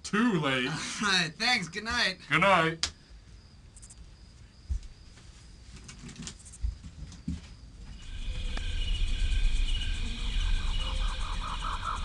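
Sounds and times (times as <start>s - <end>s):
insects chirring: 0.0s - 12.0s
rapid pulsing insect call: 0.2s - 12.0s
low rumble: 8.0s - 12.0s.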